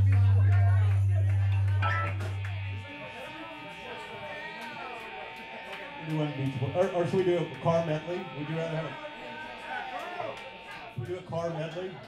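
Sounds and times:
bass guitar low note: 0.0 - 2.9
voices chattering: 0.0 - 12.0.

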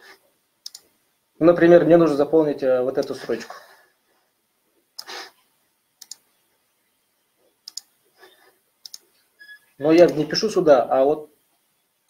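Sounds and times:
computer mouse clicking: 0.6 - 0.9, 6.0 - 6.2, 7.6 - 7.9, 8.8 - 9.1.

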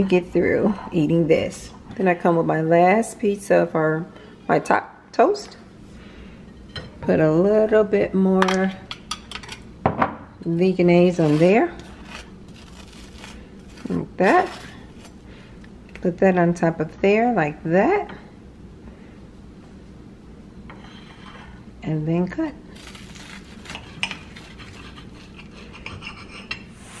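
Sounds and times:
knife scraping on toast: 11.2 - 15.2, 22.8 - 26.6.

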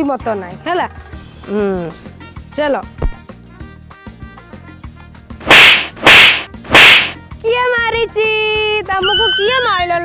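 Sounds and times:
whip-like swishes: 5.4 - 7.2.

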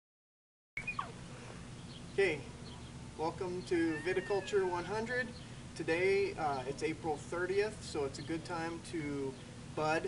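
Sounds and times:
steady low hum: 0.8 - 10.0.

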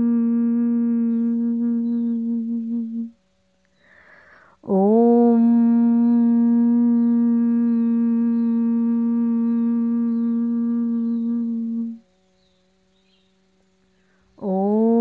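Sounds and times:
woman chanting om: 0.0 - 3.4, 4.4 - 15.0.

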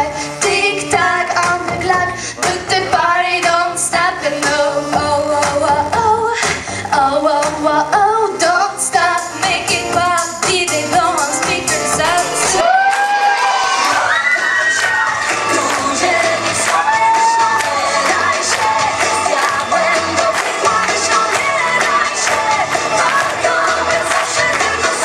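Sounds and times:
girl singing into a microphone: 0.0 - 12.7
loud pop music: 0.0 - 25.0
audience cheering and whooping: 12.5 - 25.0.

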